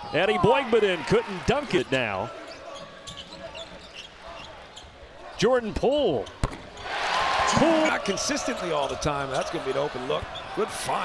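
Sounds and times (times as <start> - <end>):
crowd murmur in an arena: 1.9 - 5.6
sneakers squeaking on hardwood: 2.4 - 5.0.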